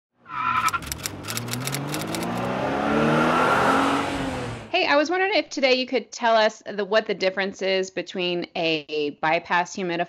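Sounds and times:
high squeal-like tone: 0.3 - 0.9
sound rising in pitch: 0.3 - 4.7
quick run of sharp clicks: 0.6 - 2.5.

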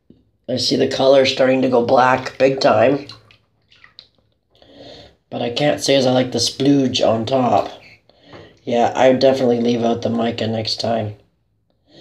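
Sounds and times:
soft swish of bath water: 2.2 - 4.6
small water drips: 2.6 - 4.7.

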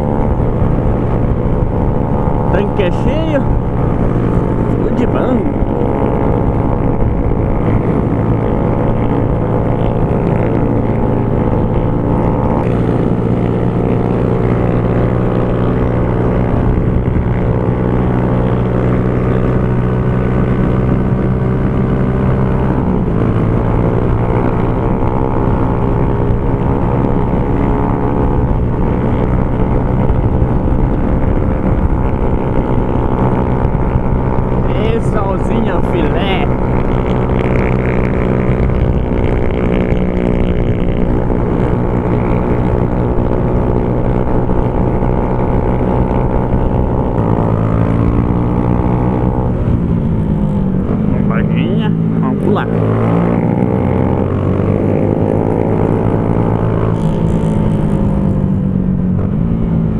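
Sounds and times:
motorcycle engine running: 0.0 - 59.9
wind rushing over microphone: 0.0 - 59.9.

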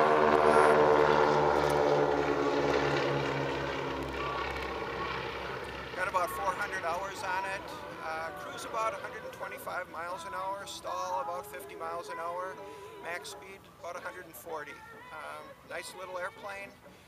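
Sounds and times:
propeller airplane flying past: 0.0 - 16.8.

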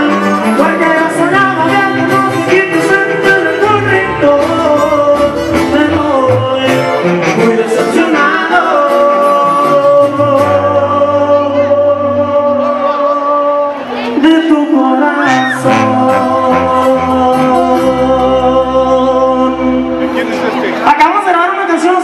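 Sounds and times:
person singing: 0.0 - 20.3
tuba bass line: 0.0 - 20.8
twelve-string guitars strummed: 0.0 - 20.8.

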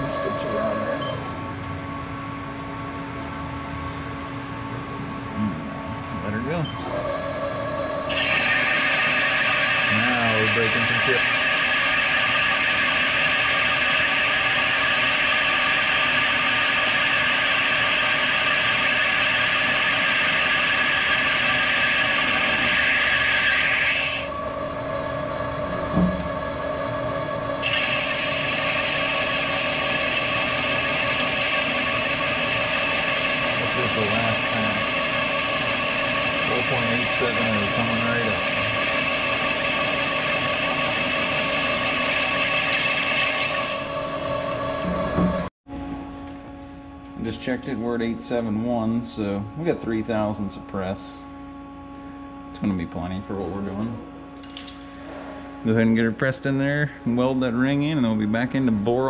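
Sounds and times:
lathe cutting metal: 0.0 - 1.5, 6.8 - 45.5.

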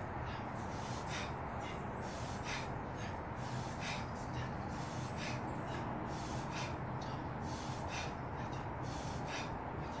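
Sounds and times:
man breathing heavily: 0.0 - 10.0
steady low hum: 0.0 - 10.0.

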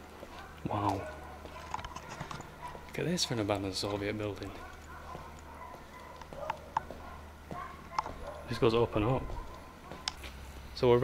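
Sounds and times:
footsteps on concrete floor: 0.0 - 10.7.

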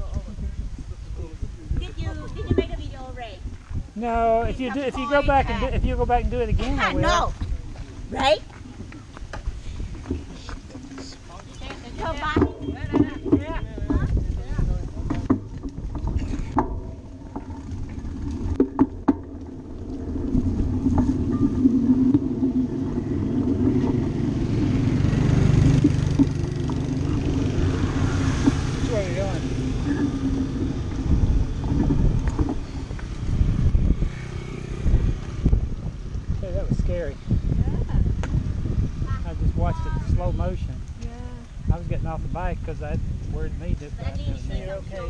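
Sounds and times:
wind rumble on microphone: 0.0 - 45.0
motorbike engine passing: 14.8 - 39.5.

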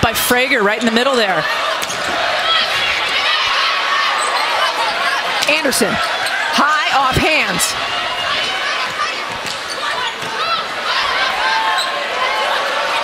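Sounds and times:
arena crowd: 0.0 - 13.0
sneakers squeaking: 0.6 - 12.4
volleyball hit: 1.7 - 3.2.

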